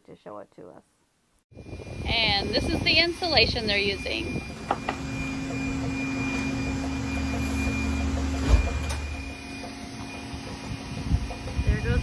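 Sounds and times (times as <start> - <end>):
insulation blowing machine humming: 1.6 - 12.0
thump: 8.4 - 9.1.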